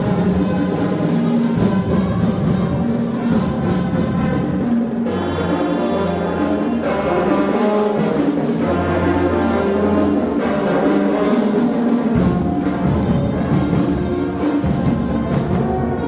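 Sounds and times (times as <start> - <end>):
brass chords: 0.0 - 16.0
steady percussion beat: 0.0 - 16.0.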